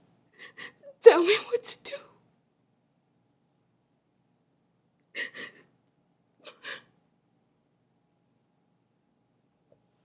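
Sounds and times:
woman sobbing: 0:00.4 - 0:02.0, 0:05.1 - 0:05.7, 0:06.4 - 0:06.9.

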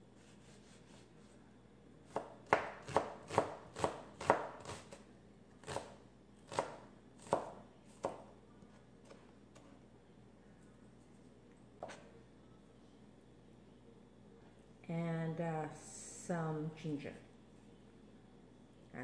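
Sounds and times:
knife chopping on cutting board: 0:02.1 - 0:05.0, 0:05.6 - 0:08.3.

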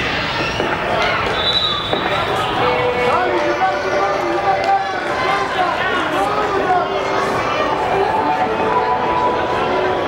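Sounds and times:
people calling and shouting: 0:00.0 - 0:10.0.

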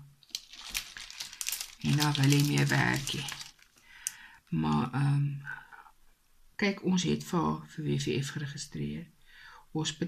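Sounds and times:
plastic clicks and crinkles: 0:00.2 - 0:04.8
plastic film crinkling: 0:00.2 - 0:04.8.

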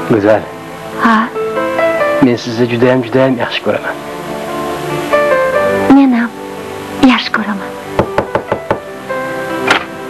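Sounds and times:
soft background music: 0:00.0 - 0:10.0
rapid knocking on door: 0:08.0 - 0:08.9.

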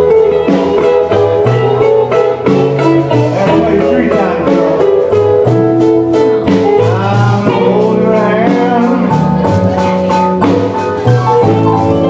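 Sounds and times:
blues band playing: 0:00.0 - 0:12.0
electric guitar: 0:00.0 - 0:12.0.

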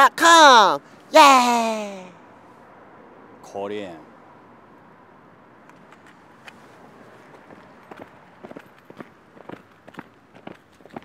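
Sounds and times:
footsteps on asphalt: 0:05.8 - 0:11.0.

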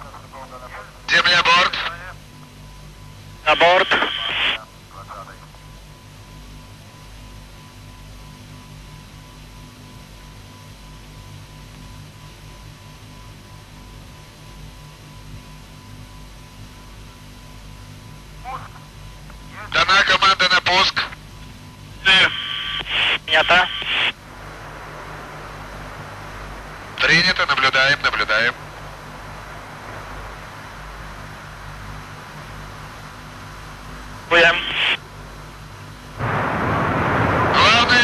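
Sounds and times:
faint voice over radio: 0:00.0 - 0:02.2, 0:03.5 - 0:05.5, 0:18.4 - 0:18.9, 0:19.5 - 0:21.2, 0:22.0 - 0:24.2, 0:27.0 - 0:28.6, 0:34.3 - 0:35.0, 0:37.6 - 0:38.0
steady hum with whistle tone: 0:00.0 - 0:38.0
radio hiss burst: 0:03.5 - 0:05.1, 0:22.0 - 0:24.2, 0:34.3 - 0:35.0, 0:36.2 - 0:38.0.

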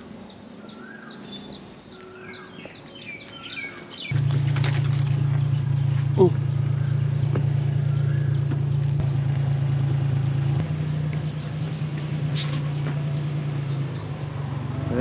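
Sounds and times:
engine idling with low hum: 0:04.1 - 0:15.0.

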